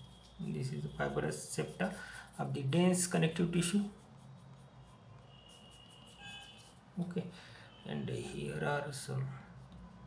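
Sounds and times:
pencil strokes on paper: 0:00.0 - 0:07.2.

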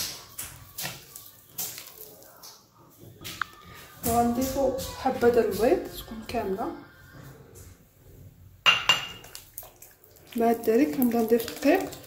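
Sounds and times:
hand squishing dough in a bowl: 0:00.0 - 0:06.7, 0:09.0 - 0:12.0.

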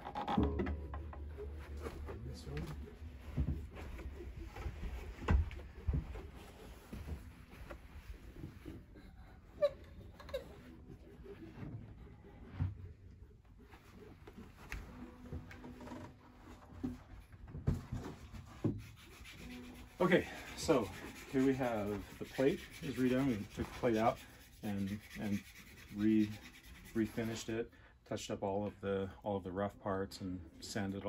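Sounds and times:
sharp wooden knocks: 0:00.0 - 0:01.2
rubbing and handling noise: 0:00.0 - 0:28.6.

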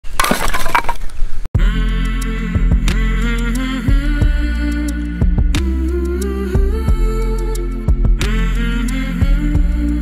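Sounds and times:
wood cracking and splintering: 0:00.0 - 0:01.2
music: 0:01.6 - 0:10.0.

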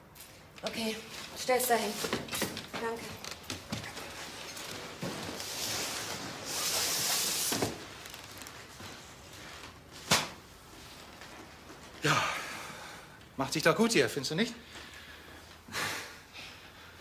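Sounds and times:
wrapped futon rustling: 0:01.0 - 0:12.0.

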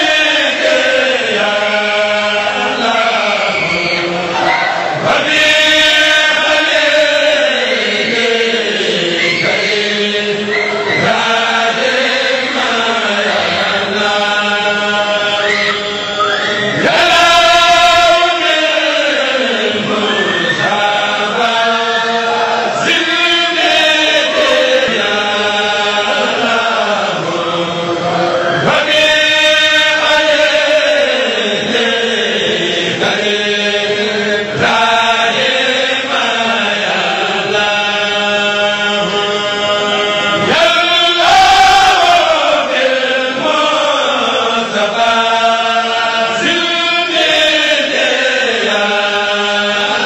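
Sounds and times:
men chanting: 0:00.0 - 0:50.0.

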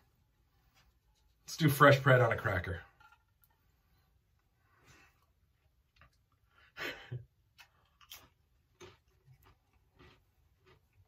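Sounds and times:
man chewing a cracker: 0:05.1 - 0:11.0.

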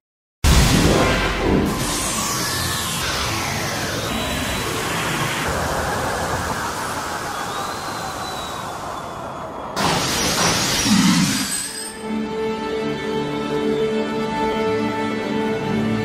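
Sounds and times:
loud hit sound effect: 0:00.4 - 0:07.3, 0:09.8 - 0:11.7
dense noise bed: 0:00.4 - 0:11.7.

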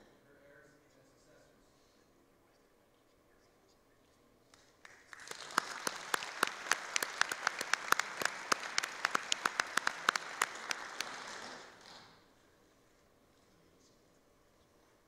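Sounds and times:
sharp individual claps: 0:04.5 - 0:12.2
audience applauding: 0:04.8 - 0:12.2.

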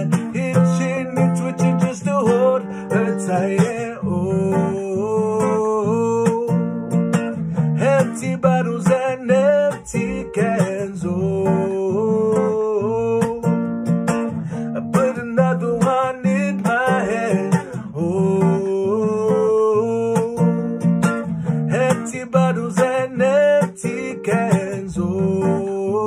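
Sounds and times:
man singing long sliding notes: 0:00.0 - 0:06.5, 0:07.8 - 0:13.5, 0:14.6 - 0:20.4, 0:21.7 - 0:26.0
strummed acoustic guitar: 0:00.0 - 0:26.0.

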